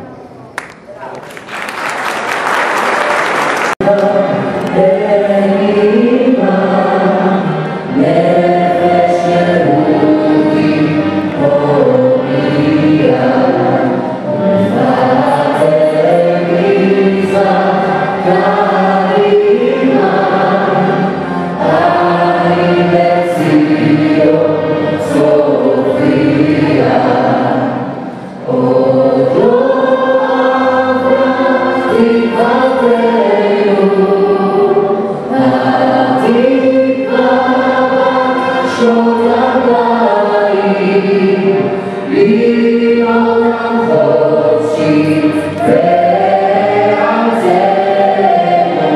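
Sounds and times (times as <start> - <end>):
vocal group singing anthem: 3.8 - 48.9.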